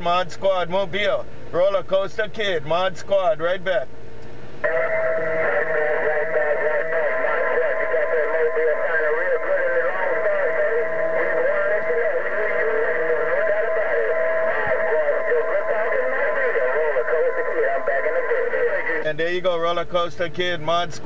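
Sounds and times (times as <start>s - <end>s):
steady radio whistle: 4.6s - 19.1s
warbling radio voice: 4.6s - 21.0s.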